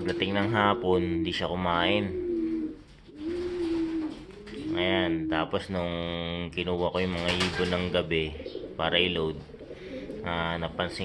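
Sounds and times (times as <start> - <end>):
pigeons cooing: 0.0 - 6.4, 7.0 - 11.0.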